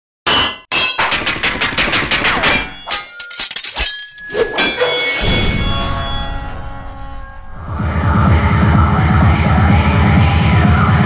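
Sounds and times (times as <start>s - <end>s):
metallic clangs and hits: 0.3s - 7.6s
ringing tones: 2.4s - 7.6s.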